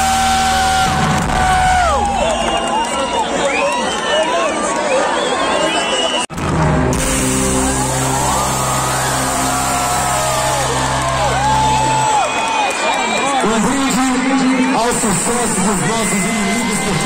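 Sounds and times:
deep held bass notes: 0.0s - 2.2s, 6.3s - 12.2s
crowd noise: 0.0s - 17.0s.

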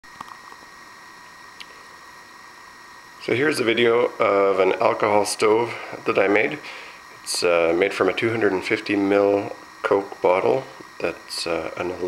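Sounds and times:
thin high hum: 0.0s - 12.0s
faint room hiss: 0.1s - 12.0s.

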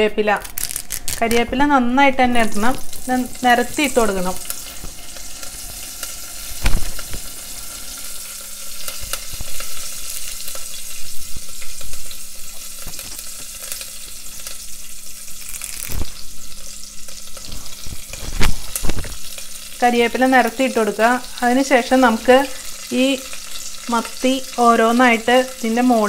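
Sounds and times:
spices sizzling in hot oil: 0.3s - 1.5s, 2.3s - 26.0s
sharp oil pops: 6.6s - 7.2s.

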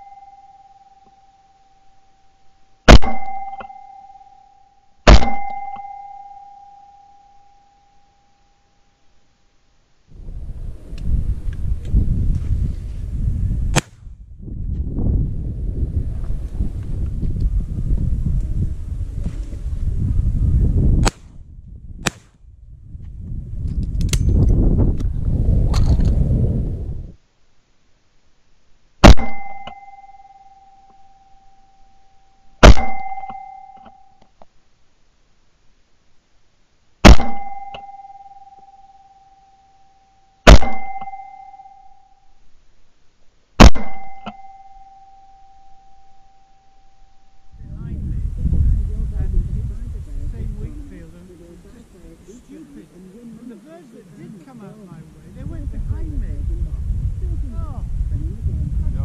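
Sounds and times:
steady ringing tone: 0.0s - 9.2s, 29.1s - 34.3s, 37.2s - 42.4s, 43.8s - 47.6s
shotgun shots: 2.9s - 3.4s, 5.1s - 5.6s, 22.0s - 22.4s, 29.0s - 29.5s, 32.6s - 33.1s, 37.0s - 37.6s, 40.5s - 41.0s, 43.6s - 44.2s
wind rumbling on microphone: 10.1s - 27.2s, 47.4s - 59.0s.

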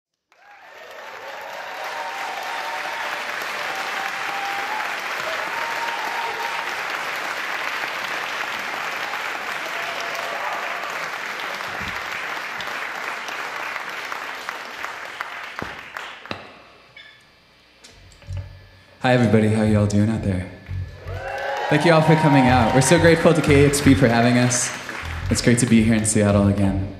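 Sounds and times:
audience applauding and cheering: 0.2s - 16.3s, 20.9s - 26.7s
whoops: 0.3s - 6.9s, 9.6s - 11.2s, 21.0s - 23.8s.

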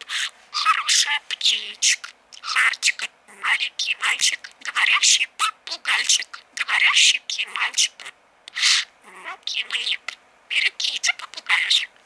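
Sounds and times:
budgerigar chattering: 0.1s - 11.9s.

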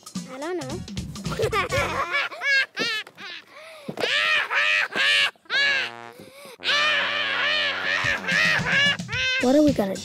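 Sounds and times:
boy crying: 1.4s - 9.7s.

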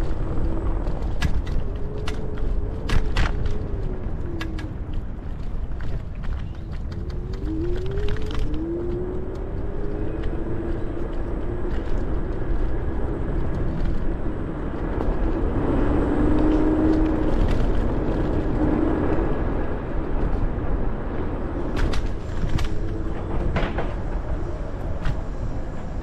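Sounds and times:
scooter tyre rumble: 0.0s - 26.0s
wind on microphone: 0.0s - 26.0s.

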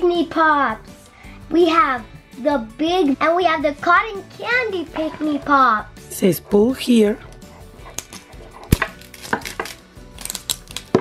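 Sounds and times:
plastic film crackling: 8.0s - 11.0s.

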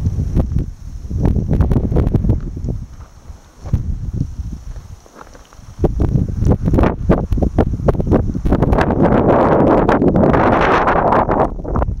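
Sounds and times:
wind buffeting microphone: 0.0s - 12.0s
footsteps on gravel: 1.7s - 7.5s.

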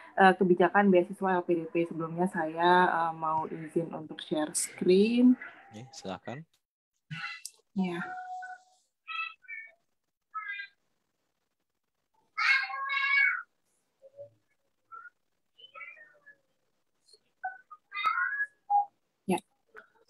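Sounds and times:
high-pitched voice-like calls: 7.1s - 9.8s, 12.4s - 14.3s.

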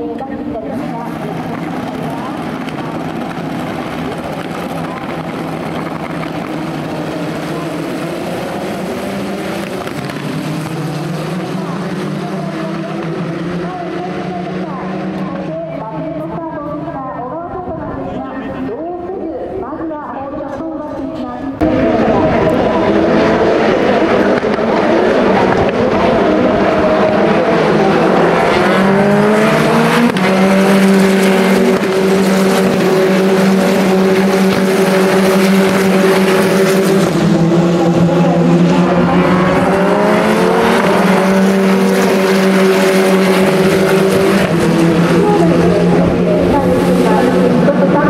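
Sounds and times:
race car engines: 0.0s - 48.0s.

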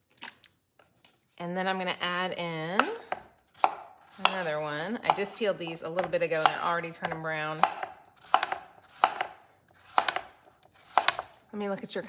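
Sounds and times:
knife slicing potato: 2.8s - 11.4s.

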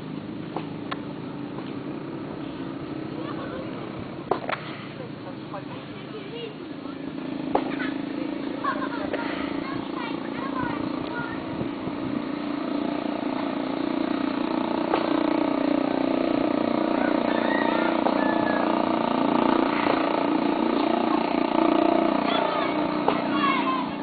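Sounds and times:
engine running steadily: 0.0s - 24.0s
faint voices: 2.3s - 12.2s, 19.6s - 24.0s.

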